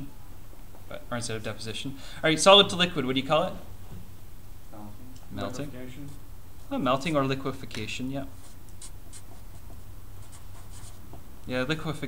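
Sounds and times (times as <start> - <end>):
steady low hum: 0.0 - 12.0
marker writing on paper: 8.4 - 11.1.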